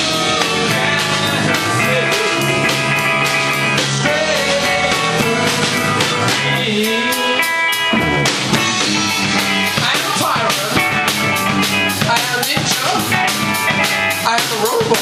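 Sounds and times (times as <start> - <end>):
drum kit beat: 0.0 - 15.0
electric guitars: 0.0 - 15.0.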